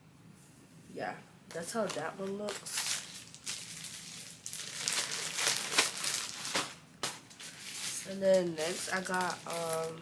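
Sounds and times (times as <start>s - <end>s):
clothes and packaging crinkling: 1.5s - 10.0s.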